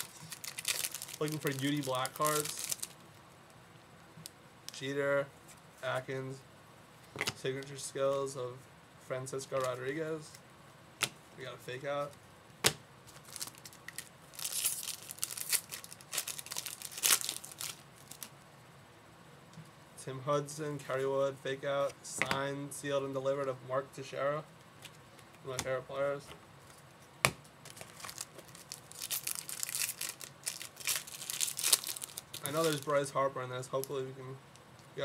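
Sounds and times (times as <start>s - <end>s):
plastic packaging crinkling: 0.0s - 3.0s, 13.1s - 18.3s, 27.6s - 33.0s.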